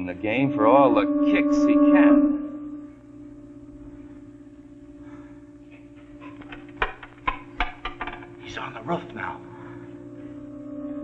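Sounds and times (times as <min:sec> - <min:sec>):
steady low drone: 0:00.0 - 0:11.0
sharp knocks: 0:06.3 - 0:08.4.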